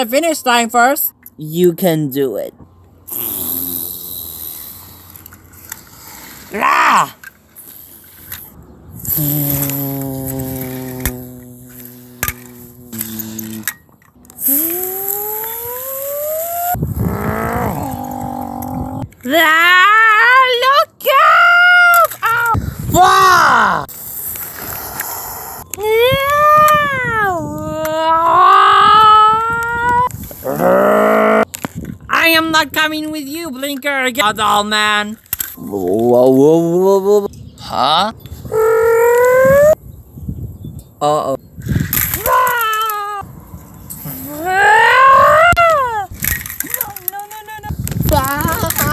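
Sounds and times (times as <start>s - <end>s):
person holding vocal note: 9.0s - 13.7s, 14.4s - 19.1s
voice imitating engine: 9.0s - 13.7s, 14.4s - 19.1s
wavering cry: 14.4s - 19.1s, 38.5s - 39.8s.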